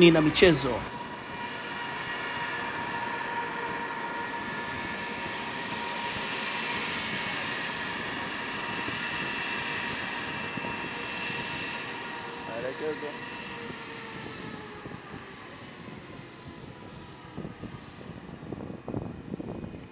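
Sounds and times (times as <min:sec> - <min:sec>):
jet engines at low power: 0:00.0 - 0:19.9.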